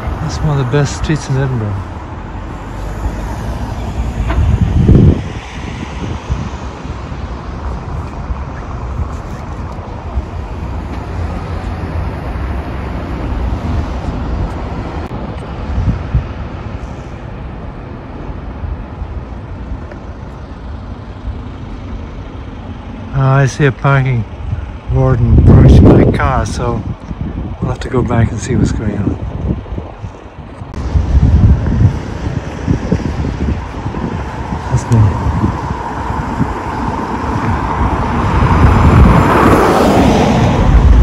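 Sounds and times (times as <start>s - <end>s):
low rumble of traffic: 0.0s - 41.0s.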